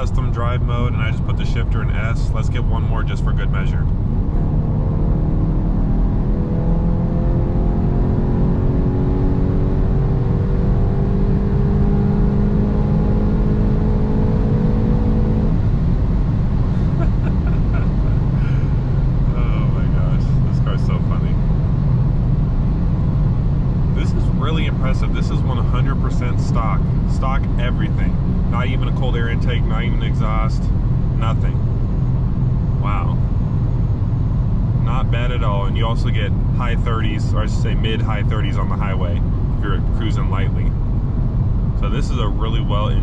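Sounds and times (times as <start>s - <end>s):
car engine at full throttle: 0.0s - 43.0s.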